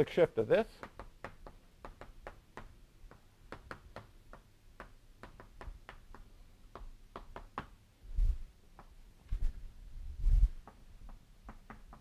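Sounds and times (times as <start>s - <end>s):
chalk tapping on blackboard: 0.6s - 7.8s, 10.6s - 12.0s.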